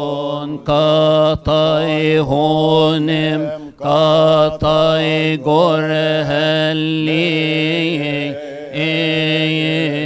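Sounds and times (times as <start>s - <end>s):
man chanting a hymn: 0.0s - 10.0s.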